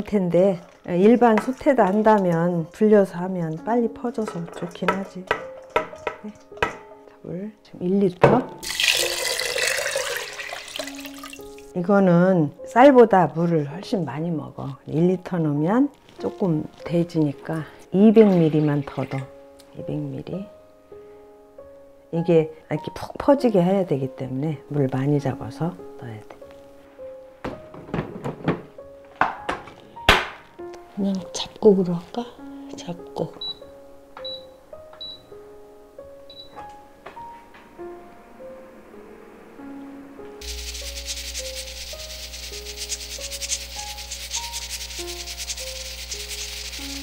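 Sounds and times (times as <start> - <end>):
soft background music: 0.0 - 47.0
metal pot clunks and knocks: 4.2 - 6.9, 8.2 - 8.7, 27.5 - 30.4
water pouring onto grains: 8.6 - 11.4, 40.4 - 47.0.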